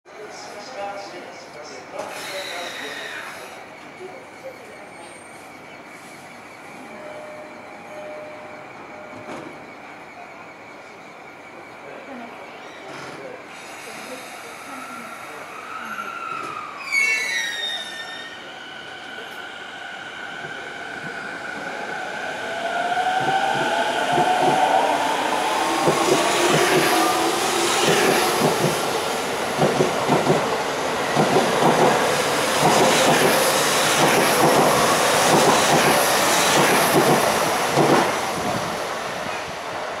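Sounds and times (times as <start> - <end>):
train brake squeal: 2.0 - 3.8, 4.4 - 10.2, 12.5 - 21.2.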